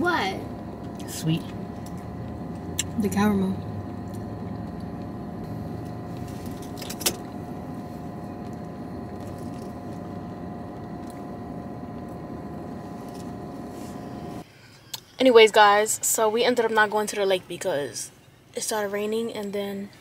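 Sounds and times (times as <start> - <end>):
car cabin engine and fan hum: 0.0 - 14.4.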